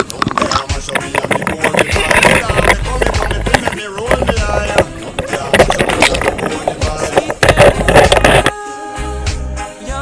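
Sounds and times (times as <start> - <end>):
song playing: 0.4 - 10.0.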